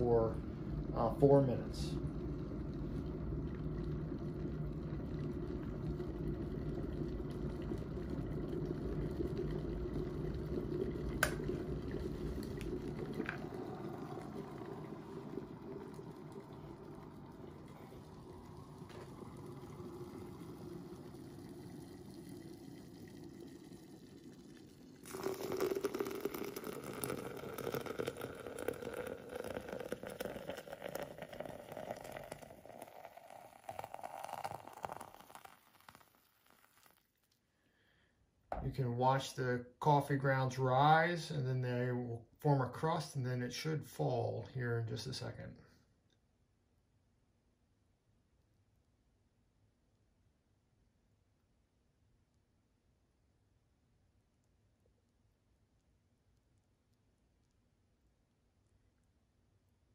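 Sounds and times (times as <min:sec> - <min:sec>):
electric kettle boiling: 0:00.0 - 0:37.1
hot water pouring: 0:00.0 - 0:45.4.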